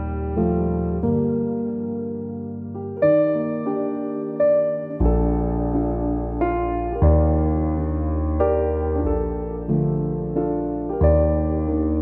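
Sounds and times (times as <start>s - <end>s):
soft piano music: 0.0s - 12.0s.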